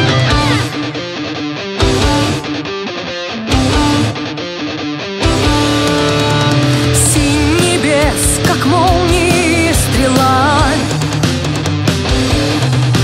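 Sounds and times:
hard rock band playing: 0:00.0 - 0:13.0.

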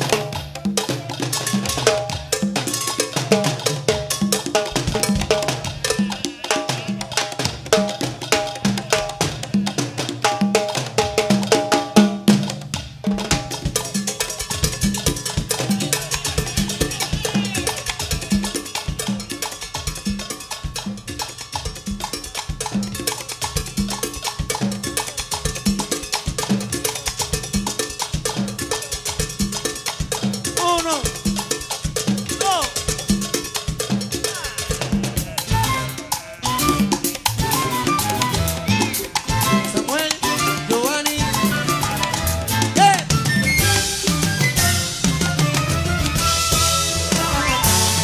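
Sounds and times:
cowbell: 0:00.0 - 0:43.0
latin band percussion groove: 0:00.0 - 0:48.0.

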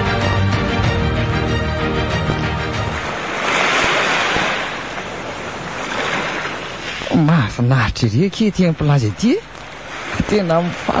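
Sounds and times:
background music: 0:00.0 - 0:03.2
rushing surf sound effect: 0:00.0 - 0:07.0.

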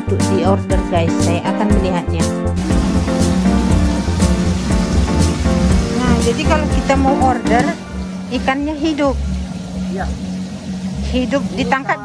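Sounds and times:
low machine hum: 0:00.0 - 0:12.0
water pouring and bubbling: 0:02.5 - 0:12.0.

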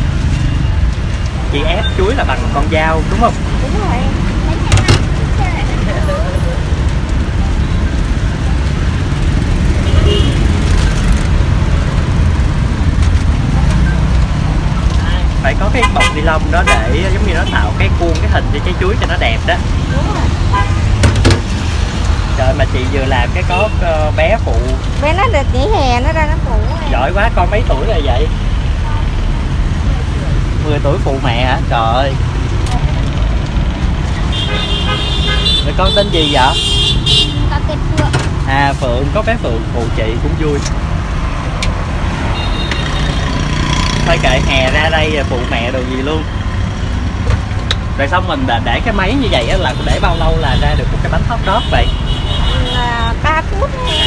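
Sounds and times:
traffic rumble: 0:00.0 - 0:54.0.

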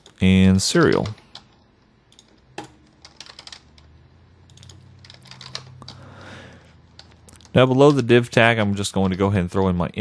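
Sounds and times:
keyboard typing clicks: 0:00.8 - 0:06.0.

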